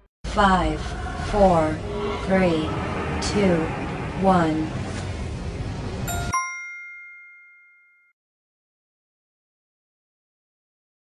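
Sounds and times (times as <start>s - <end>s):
steady noisy background: 0.3s - 6.3s
bell-like ding chime: 6.1s - 8.2s.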